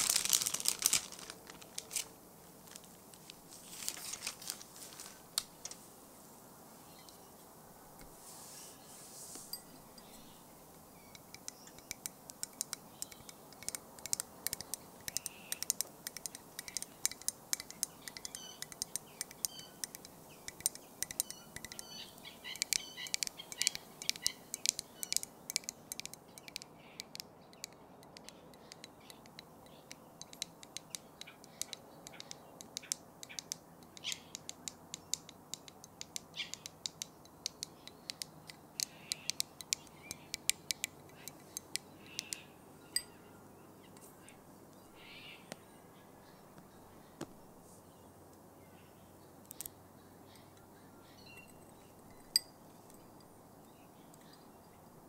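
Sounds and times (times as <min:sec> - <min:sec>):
bird chirps: 0:09.5 - 0:35.2, 0:36.2 - 0:47.2, 0:48.6 - 0:54.9
light tapping and clicking: 0:11.1 - 0:42.4.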